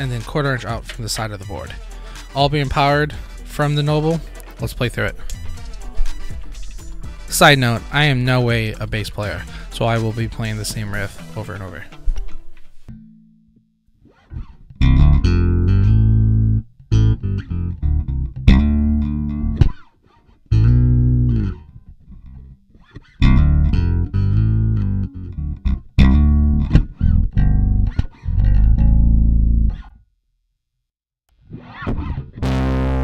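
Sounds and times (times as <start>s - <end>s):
electric bass riff: 0.0s - 13.2s, 14.0s - 19.9s, 20.5s - 30.0s, 31.4s - 33.0s.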